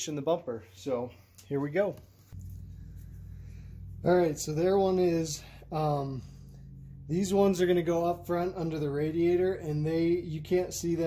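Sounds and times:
steady low hum: 0:00.5 - 0:11.0.

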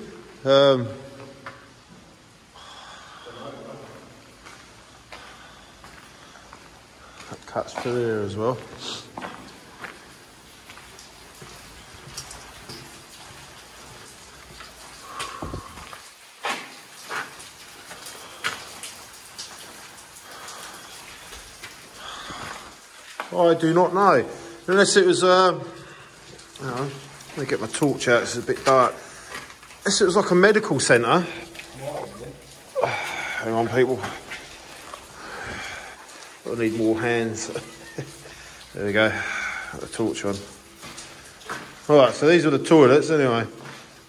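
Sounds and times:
steady rain: 0:00.0 - 0:44.0
breathy sound: 0:15.0 - 0:16.1, 0:32.7 - 0:36.4.

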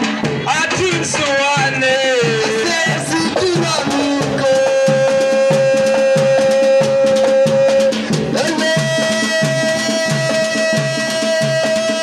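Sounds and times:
dance music drum beat: 0:00.0 - 0:12.0.

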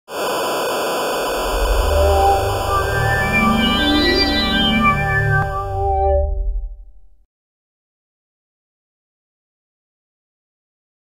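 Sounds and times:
tv static hiss: 0:00.1 - 0:05.4
low bass intro music: 0:01.3 - 0:07.2.

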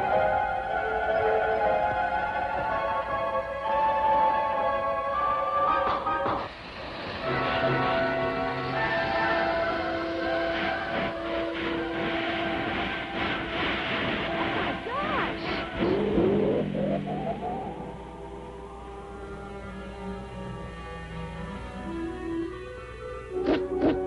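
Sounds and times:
orchestral cartoon music: 0:00.0 - 0:24.0
noisy sound effects: 0:06.2 - 0:19.0
rising sliding tones: 0:06.6 - 0:24.0.

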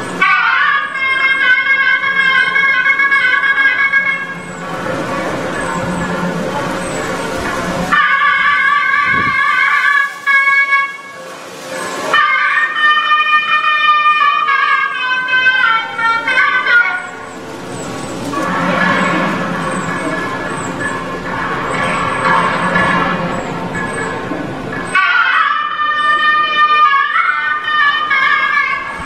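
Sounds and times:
double-reed pipe playing long notes: 0:00.1 - 0:17.4, 0:24.9 - 0:29.0.

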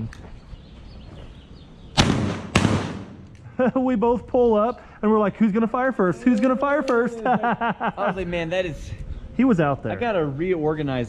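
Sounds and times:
shotgun shots with echo: 0:02.0 - 0:03.3.

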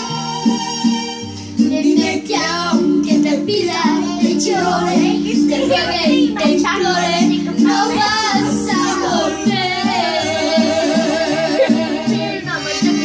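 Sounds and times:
instrumental music from speaker: 0:00.0 - 0:13.0
girl singing: 0:01.7 - 0:13.0.

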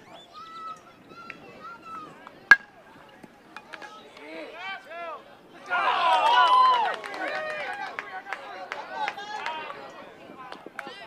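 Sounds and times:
metal bat hitting ball: 0:02.5 - 0:02.8.

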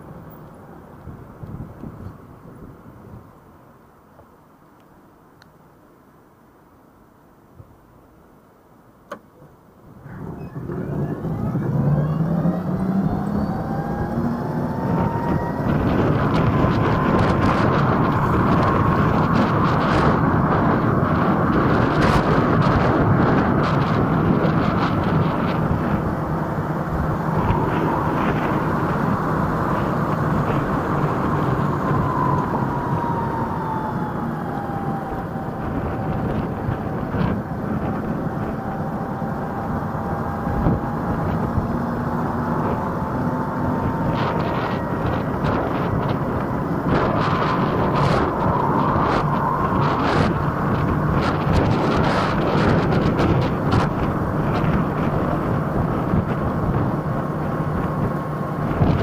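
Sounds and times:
wind and road noise: 0:00.0 - 0:59.0
electric scooter motor whine: 0:10.0 - 0:59.0.

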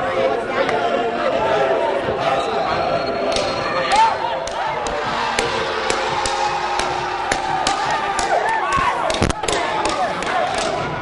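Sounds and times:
group singing: 0:00.0 - 0:10.4
sharp percussive strikes: 0:04.4 - 0:10.9.

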